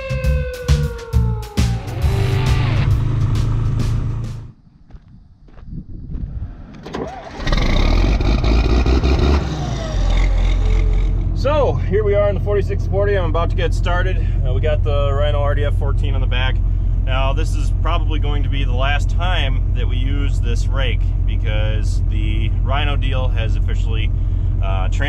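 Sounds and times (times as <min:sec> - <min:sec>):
background music with a beat: 0:00.0 - 0:04.5
tractor diesel engine running: 0:01.3 - 0:04.6, 0:07.0 - 0:25.0.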